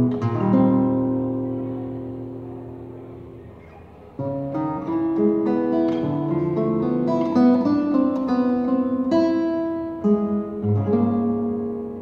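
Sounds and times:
classical guitar fingerstyle: 0.0 - 12.0.

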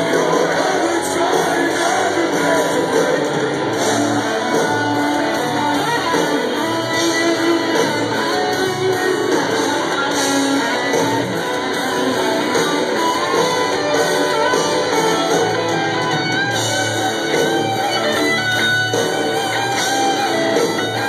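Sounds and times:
electric guitar: 0.0 - 21.0
live rock band playing: 0.0 - 21.0.

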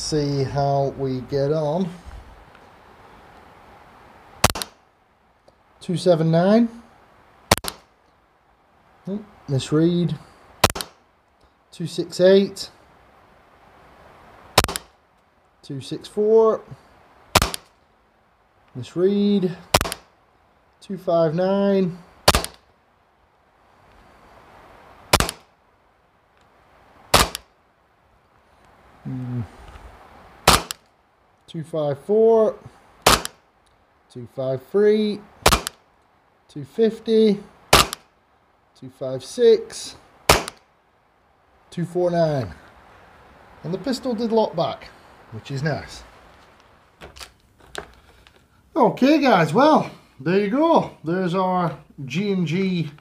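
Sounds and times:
airsoft pistol shot: 4.4 - 4.8, 7.5 - 7.8, 10.6 - 11.0, 14.6 - 14.9, 17.3 - 17.7, 19.7 - 20.1, 22.2 - 22.6, 25.1 - 25.5, 27.1 - 27.5, 30.4 - 30.8, 33.0 - 33.4, 35.4 - 35.8, 37.7 - 38.1, 40.3 - 40.6.

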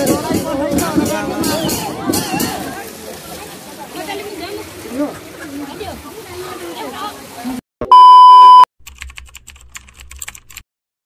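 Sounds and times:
test-pattern beep: 7.8 - 8.7
keyboard typing clicks: 8.8 - 10.6.

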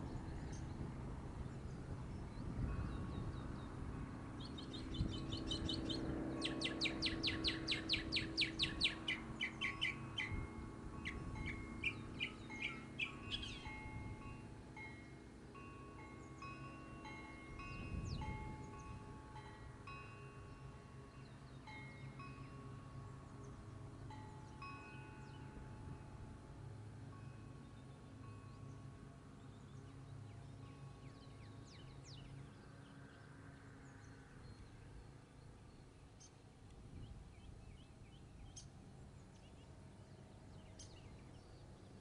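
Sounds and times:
faint ringing tones: 0.0 - 37.5
songbird singing: 0.0 - 42.0
steady low hum: 0.0 - 42.0.

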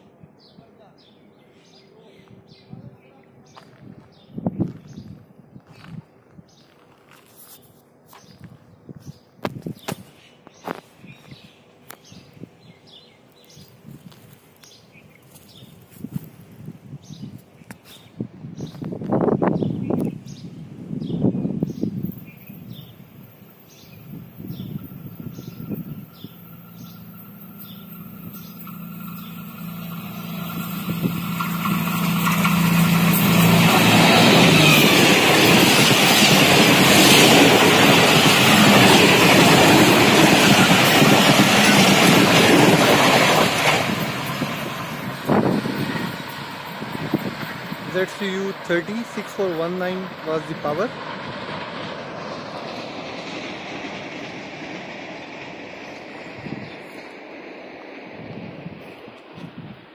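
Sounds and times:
diesel locomotive engine drone: 18.1 - 59.9
train wheels rushing on rails: 21.6 - 59.9.

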